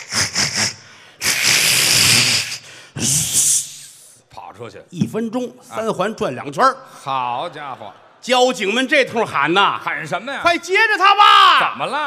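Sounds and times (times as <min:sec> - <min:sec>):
man making breathy puffs: 0:00.0 - 0:04.2
man making sustained hiss: 0:00.0 - 0:04.2.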